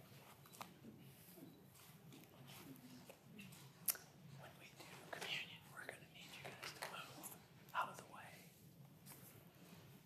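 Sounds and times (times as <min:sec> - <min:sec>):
low room hum: 0:00.0 - 0:10.0
people whispering: 0:02.3 - 0:08.6.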